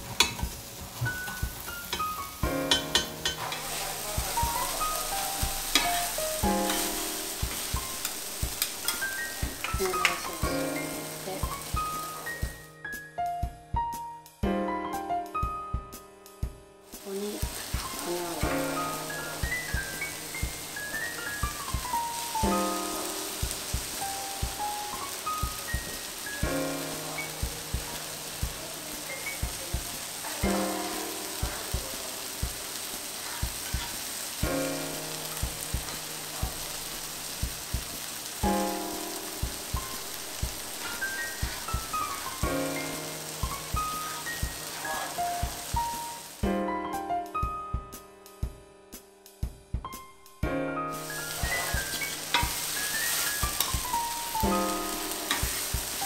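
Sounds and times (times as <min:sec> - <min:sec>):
batter sizzling on hot griddle: 0:00.0 - 0:12.7, 0:16.9 - 0:46.4, 0:50.9 - 0:56.0
background music with steady beat: 0:00.0 - 0:32.8, 0:33.4 - 0:56.0.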